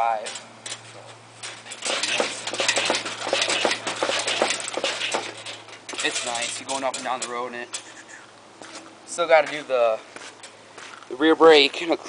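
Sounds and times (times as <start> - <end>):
go-kart frame rattling and clanking: 0.0 - 8.0.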